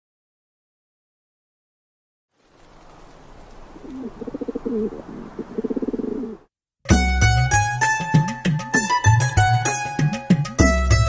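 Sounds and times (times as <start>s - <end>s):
soft ambient hiss: 2.4s - 6.5s
dove cooing: 3.2s - 6.5s.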